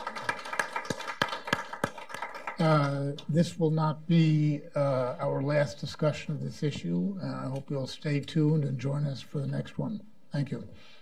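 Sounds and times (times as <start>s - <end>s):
nearby loud claps: 0.0s - 3.0s
people clapping: 0.0s - 3.3s.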